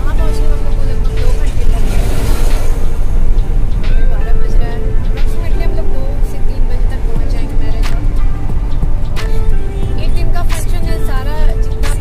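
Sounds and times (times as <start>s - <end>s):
woman speaking: 0.0s - 2.5s, 4.1s - 8.1s, 10.0s - 12.0s
background music: 0.0s - 12.0s
car engine and tyres rumbling: 0.0s - 12.0s.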